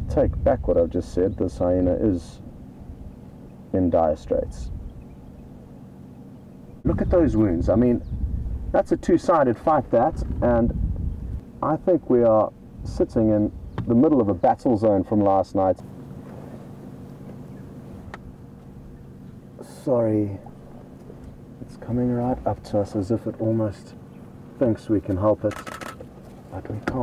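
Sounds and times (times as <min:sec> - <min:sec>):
vehicle engine idling: 0:00.0 - 0:27.0.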